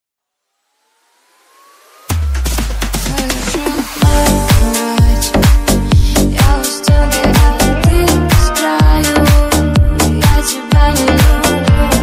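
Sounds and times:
faint tone gliding upward: 0.2 - 2.5
electronic noise riser: 0.2 - 6.3.

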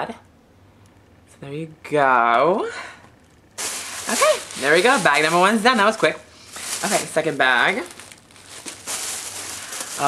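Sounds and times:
plastic bag rustling: 3.6 - 10.0.

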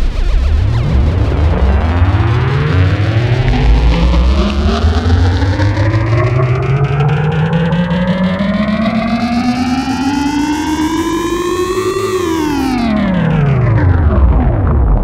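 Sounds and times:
synthesizer tone gliding in pitch: 0.0 - 14.8
steady low drone: 0.0 - 15.0.

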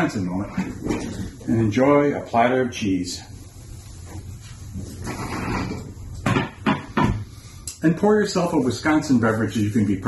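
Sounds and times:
board scraping on wooden desk: 4.8 - 7.1.

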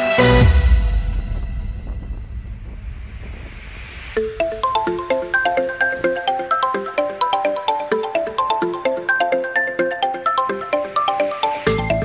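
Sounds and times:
electronic music: 0.0 - 12.0
wind rumbling on microphone: 0.6 - 5.8.

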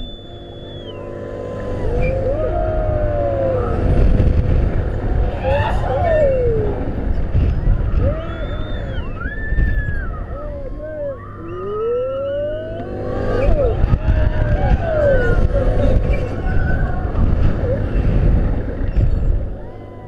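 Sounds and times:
wind rumble on microphone: 0.9 - 20.0
riders yelling and whooping: 1.7 - 20.0.

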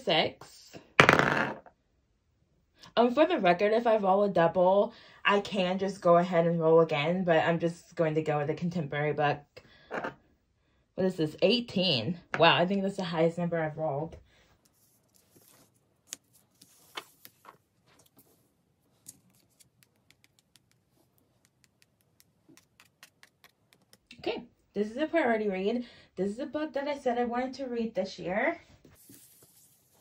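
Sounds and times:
die clattering on table: 1.0 - 1.7.

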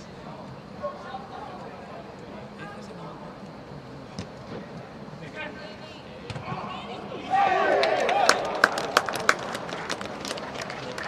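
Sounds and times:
people shouting in celebration: 7.2 - 9.0
hand claps: 7.8 - 11.0.

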